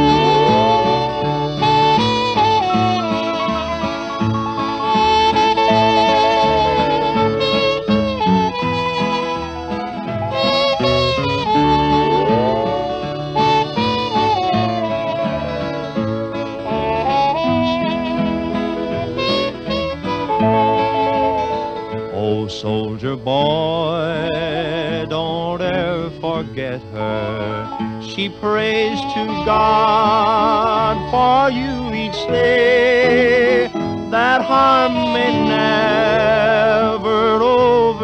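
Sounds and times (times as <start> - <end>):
lead instrument melody: 0.0 - 22.2, 25.8 - 38.0
bass: 0.0 - 28.4, 29.0 - 38.0
strummed guitar rhythm: 0.0 - 38.0.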